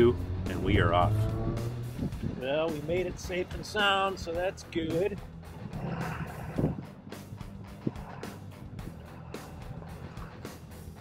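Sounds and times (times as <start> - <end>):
engine and road hum: 0.0 - 11.0.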